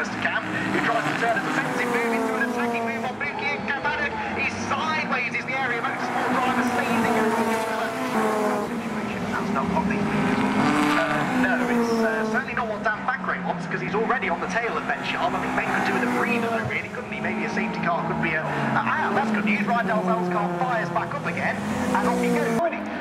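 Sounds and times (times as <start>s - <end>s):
race cars revving past: 0.0s - 23.0s.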